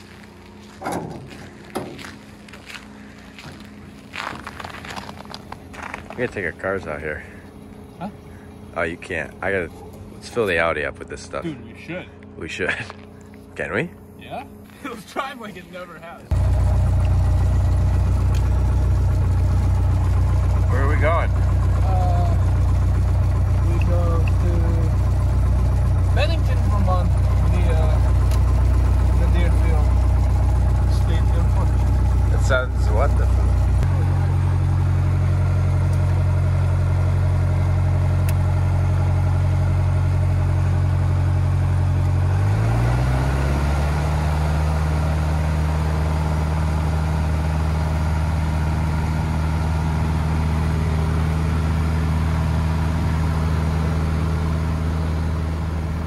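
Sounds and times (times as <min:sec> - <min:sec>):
light plane engine and propeller: 0:05.0 - 0:56.0.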